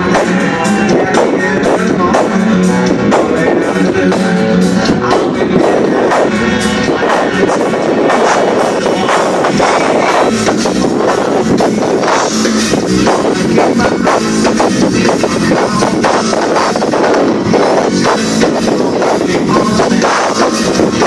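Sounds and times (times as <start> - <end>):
live rock band playing: 0.0 - 21.0.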